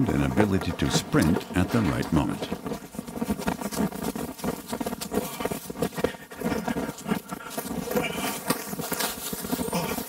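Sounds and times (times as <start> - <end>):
running footsteps on dry grass: 0.0 - 10.0.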